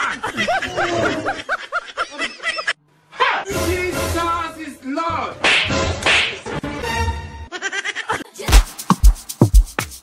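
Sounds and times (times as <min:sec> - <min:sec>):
high-pitched laugh: 0:00.0 - 0:02.8, 0:07.5 - 0:08.5.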